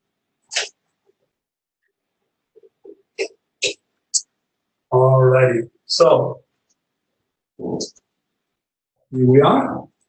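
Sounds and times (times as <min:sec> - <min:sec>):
soft mouth sounds: 0:00.5 - 0:00.8, 0:02.6 - 0:04.3.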